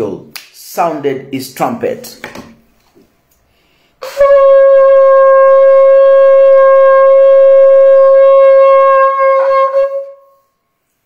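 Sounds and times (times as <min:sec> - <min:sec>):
ram's horn blown in long note: 0:04.0 - 0:10.5.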